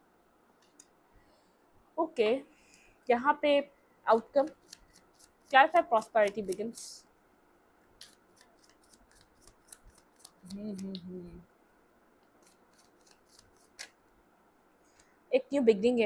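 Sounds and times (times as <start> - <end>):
cards being shuffled: 4.5 - 6.8, 8.0 - 11.1, 12.3 - 14.0
person humming: 10.4 - 11.5.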